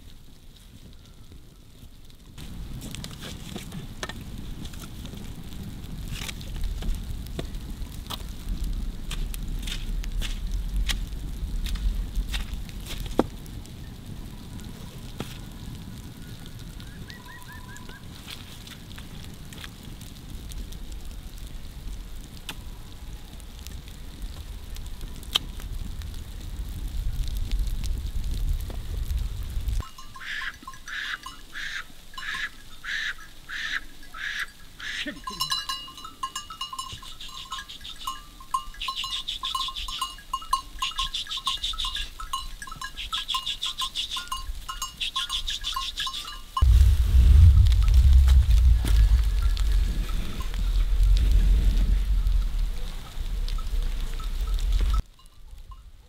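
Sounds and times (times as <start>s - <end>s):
many sheep bells jingling: 29.8s - 46.7s, 49.0s - 51.0s, 52.4s - 56.0s
low rumble: 46.6s - 55.0s.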